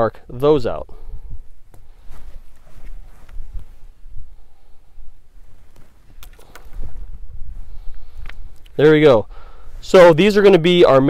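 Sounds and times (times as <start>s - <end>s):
wind rumbling on microphone: 0.8s - 9.8s
leather rustling: 1.4s - 4.1s, 5.2s - 8.6s
faint clicks: 5.7s - 6.8s, 7.9s - 8.8s.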